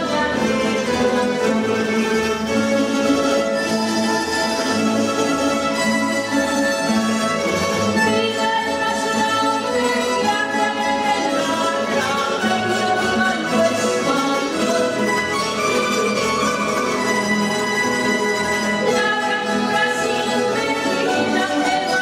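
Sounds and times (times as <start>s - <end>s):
woman singing: 0.0s - 2.0s, 8.0s - 15.4s, 18.8s - 22.0s
plucked string ensemble playing: 0.0s - 22.0s.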